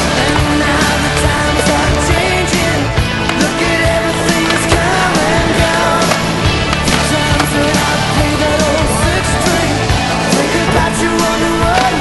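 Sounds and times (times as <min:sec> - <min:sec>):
rock music: 0:00.0 - 0:12.0
skateboard wheels rolling on asphalt: 0:00.0 - 0:12.0.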